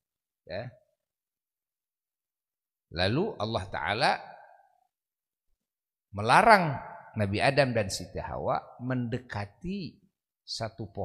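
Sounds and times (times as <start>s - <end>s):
man speaking: 0.5s - 0.8s, 2.9s - 4.2s, 6.1s - 11.0s.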